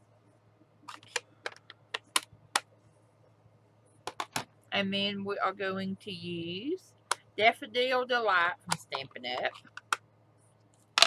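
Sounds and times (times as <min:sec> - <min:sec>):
plastic case clicking: 0:00.9 - 0:02.7.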